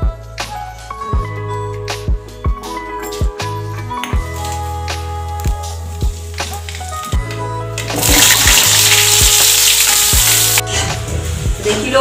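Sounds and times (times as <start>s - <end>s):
background music with steady beat: 0.0s - 12.0s
hot oil sizzling: 7.8s - 10.6s.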